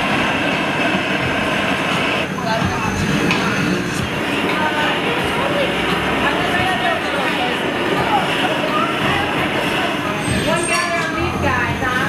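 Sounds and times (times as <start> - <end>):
gas burners rushing: 0.0 - 12.0
indistinct voices talking: 0.8 - 12.0.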